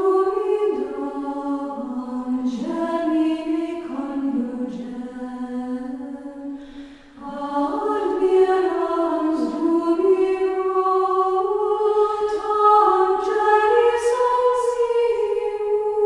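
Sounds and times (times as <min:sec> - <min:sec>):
choir singing unaccompanied: 0:00.0 - 0:06.6, 0:07.2 - 0:16.0.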